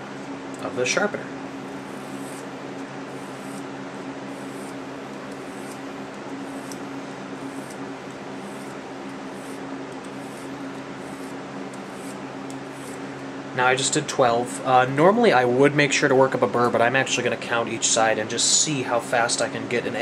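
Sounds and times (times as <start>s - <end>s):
box fan humming: 0.0s - 20.0s
knife blade scraping on sharpener: 1.9s - 2.5s, 3.1s - 3.7s, 4.3s - 5.8s, 6.4s - 6.8s, 7.4s - 7.8s, 8.4s - 13.0s.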